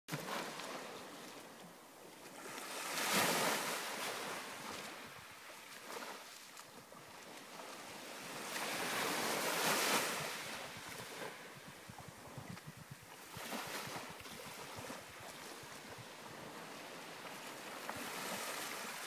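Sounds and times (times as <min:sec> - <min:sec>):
waves washing onto pebbles: 0:07.5 - 0:11.4, 0:15.6 - 0:19.0.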